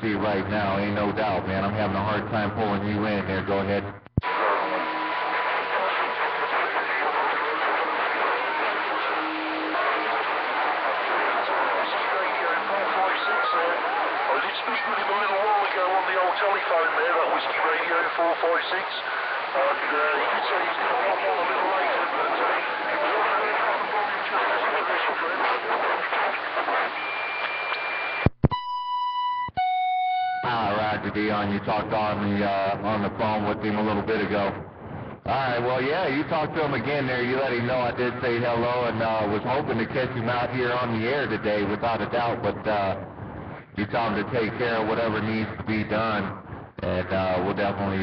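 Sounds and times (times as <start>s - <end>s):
garbled radio voices: 0.0s - 27.0s, 30.4s - 34.6s
radio static: 0.0s - 28.6s, 30.4s - 48.0s
radio transmitter click: 4.0s - 15.3s
thin steady whistle: 4.2s - 6.1s, 9.1s - 10.0s, 27.0s - 28.3s.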